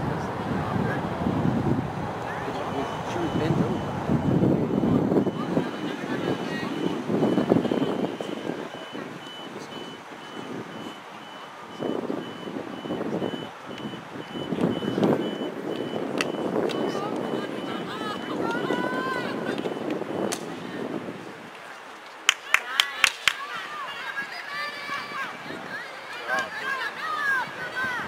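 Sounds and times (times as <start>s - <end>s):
voices: 0.0s - 28.0s
reversing alarm beeping: 2.6s - 19.0s, 19.6s - 19.9s.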